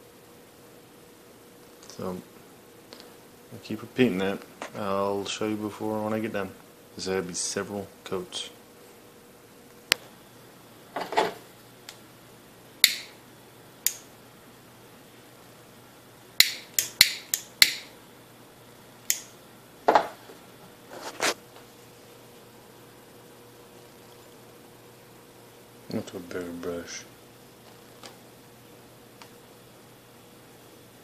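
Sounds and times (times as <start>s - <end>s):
faint steady hum: 0.0s - 31.0s.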